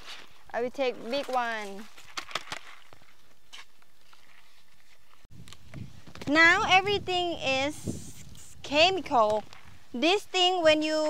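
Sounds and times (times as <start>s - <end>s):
quiet outdoor background noise: 0.0s - 11.0s.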